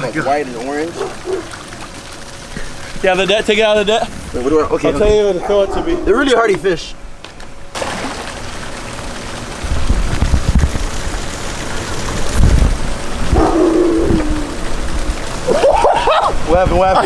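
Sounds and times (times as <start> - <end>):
wind buffeting microphone: 9.6 - 11.1, 12.1 - 15.2.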